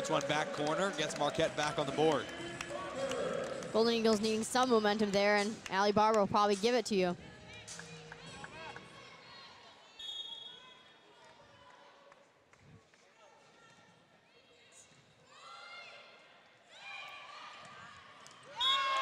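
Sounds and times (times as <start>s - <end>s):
distant crowd and player voices: 0.0s - 19.0s.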